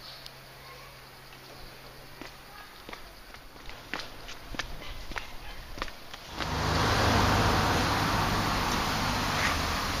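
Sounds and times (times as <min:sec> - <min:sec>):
footsteps on stone paving: 0:01.3 - 0:06.6.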